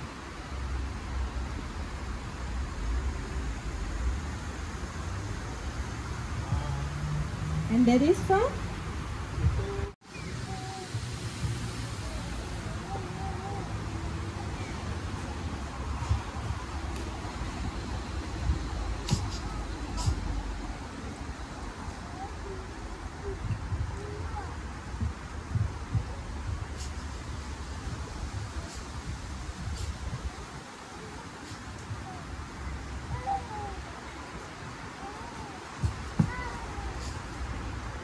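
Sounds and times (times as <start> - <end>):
low outdoor rumble: 0.0 - 38.0.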